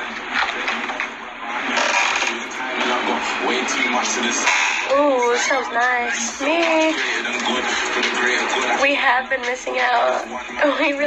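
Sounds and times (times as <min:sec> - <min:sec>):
rapping over a beat: 0:02.3 - 0:11.0.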